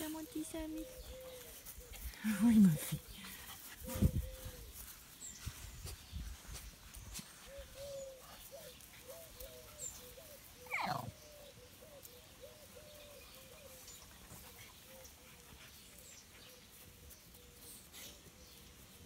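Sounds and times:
short animal calls: 10.6 - 11.2.

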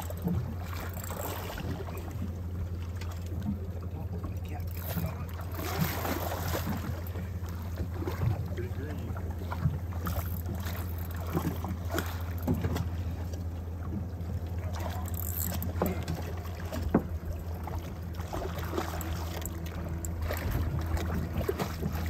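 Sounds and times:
steady low hum: 0.0 - 22.0
water splashing against hull: 0.0 - 22.0.

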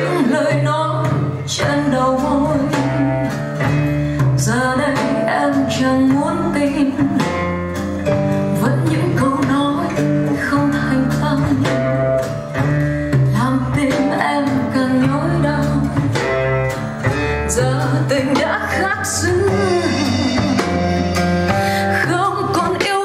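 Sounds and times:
guitar accompaniment: 0.0 - 23.0
sustained bass notes: 0.0 - 23.0.

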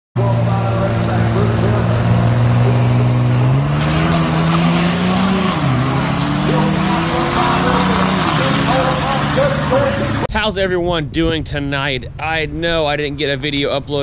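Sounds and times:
truck engine at full throttle: 0.2 - 10.4.

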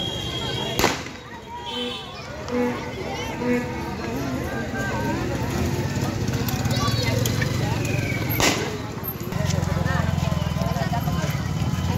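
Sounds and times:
crowd chatter: 0.0 - 11.9.

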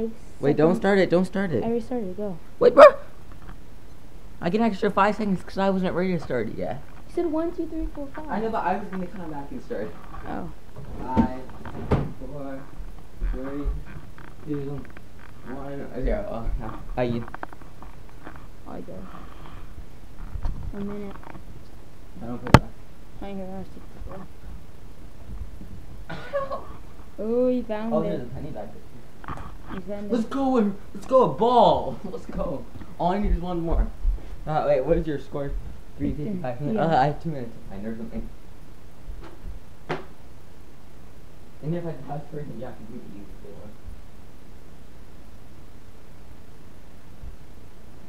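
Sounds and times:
low background rumble and hiss: 0.0 - 48.0
faint rustling: 6.1 - 22.5
microphone rubbing on blanket: 16.4 - 21.2.

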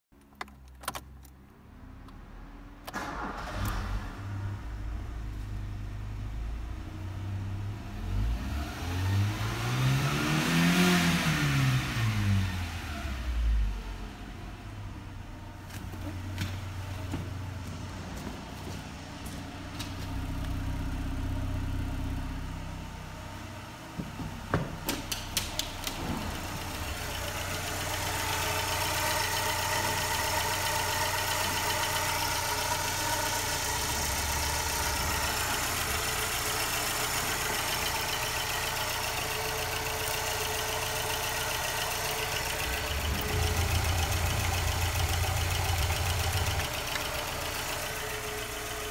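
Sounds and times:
car engine starting and idling: 0.1 - 48.9
car engine revving: 6.0 - 14.5, 25.4 - 48.9.

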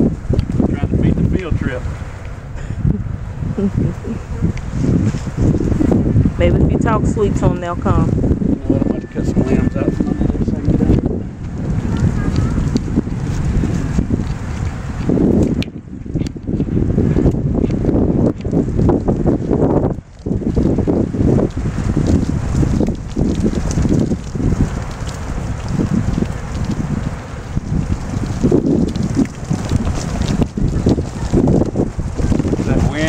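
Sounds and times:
strong wind buffeting microphone: 0.0 - 33.0.

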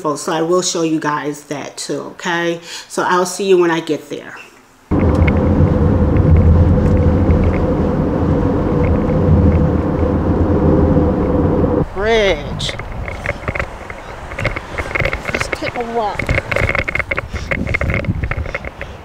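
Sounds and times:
car cabin road and engine noise: 4.9 - 19.0.

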